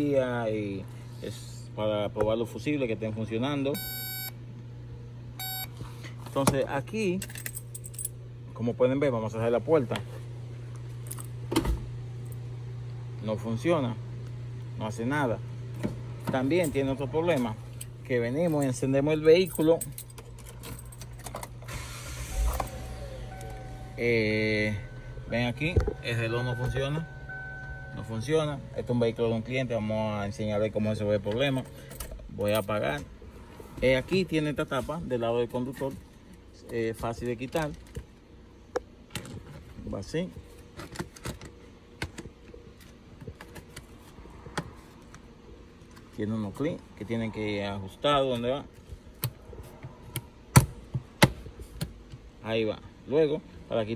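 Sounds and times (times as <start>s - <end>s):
faint low hum: 0.0s - 50.4s
car engine cranking: 20.1s - 28.8s
car engine running: 20.2s - 32.4s.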